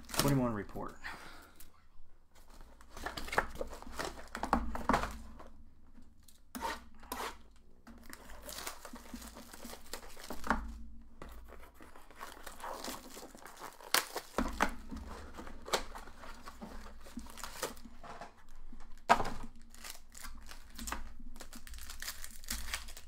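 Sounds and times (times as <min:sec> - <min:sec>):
foil wrappers tearing and crinkling: 0:00.0 - 0:00.6, 0:08.0 - 0:23.0.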